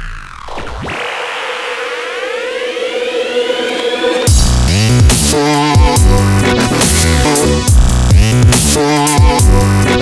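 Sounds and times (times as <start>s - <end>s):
rising synth sweep: 0.0s - 5.7s.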